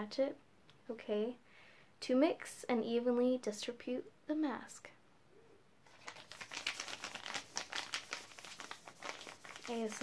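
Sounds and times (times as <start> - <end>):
plastic sachet crinkling: 5.9 - 10.0.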